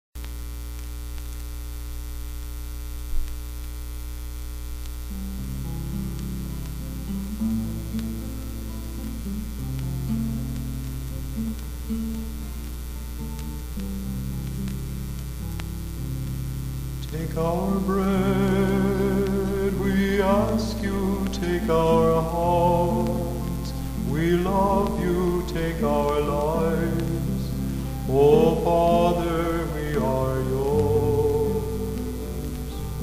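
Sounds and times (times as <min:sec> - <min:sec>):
low electrical hum: 0:00.2 - 0:33.0
vinyl clicks and pops: 0:00.2 - 0:33.0
vinyl surface hiss: 0:00.2 - 0:33.0
acoustic guitar playing: 0:05.1 - 0:33.0.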